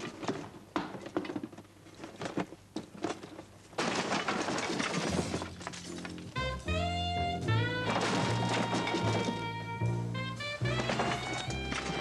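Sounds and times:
crash-like clatter: 0:03.1 - 0:06.3, 0:07.8 - 0:09.5
jazzy brass music: 0:06.3 - 0:12.0.

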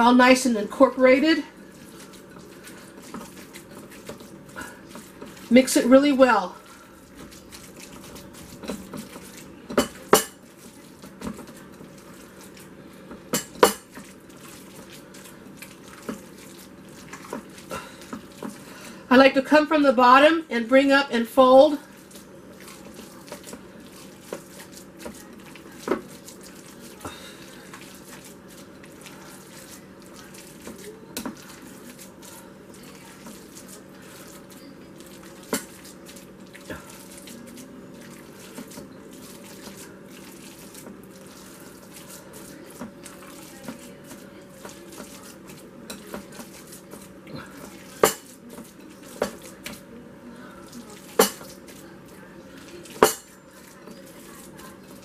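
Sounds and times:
hands kneading raw meat: 0:01.6 - 0:18.9, 0:21.8 - 0:49.8.

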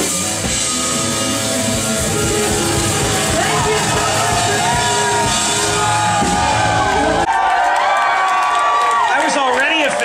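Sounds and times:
rock band with vocals: 0:00.0 - 0:07.2
audience cheering and whooping: 0:00.0 - 0:10.0.

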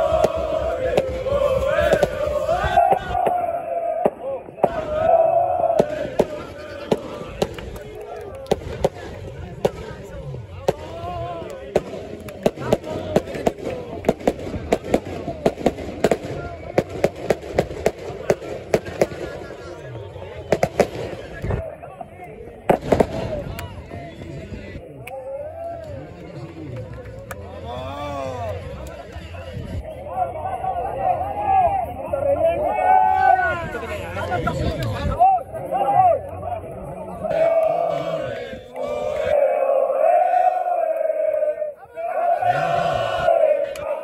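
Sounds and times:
people shouting and chanting: 0:00.0 - 0:26.7, 0:27.3 - 0:44.0
people clapping in rhythm: 0:07.4 - 0:09.2.

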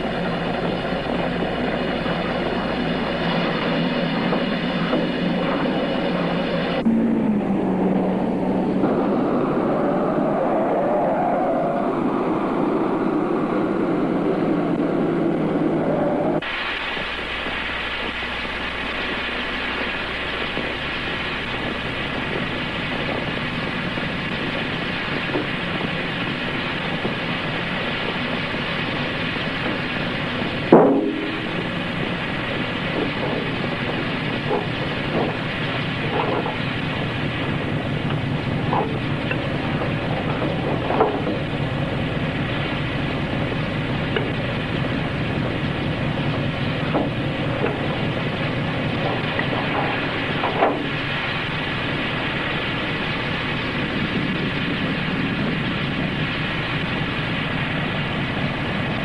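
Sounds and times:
mechanical rumble: 0:00.0 - 0:59.0.

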